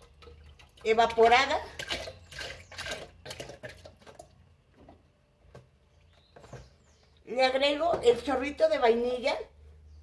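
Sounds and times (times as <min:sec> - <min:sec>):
liquid dripping: 0:00.0 - 0:04.5
milk glugging into blender jar: 0:00.0 - 0:04.5.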